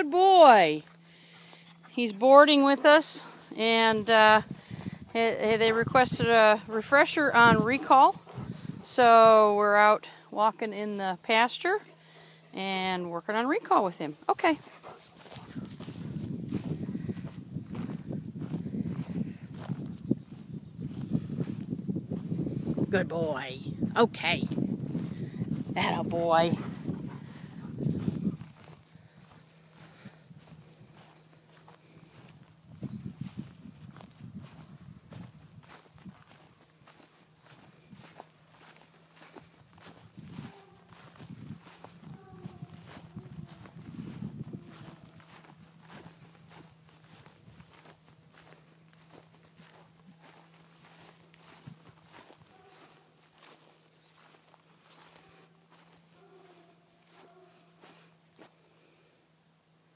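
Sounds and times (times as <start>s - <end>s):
footsteps through dry grass: 0.0s - 10.2s, 13.6s - 59.7s
insects trilling: 0.0s - 59.9s.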